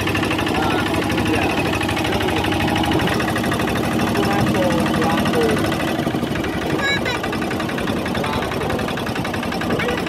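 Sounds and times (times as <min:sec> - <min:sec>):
motorboat engine chugging: 0:00.0 - 0:10.0.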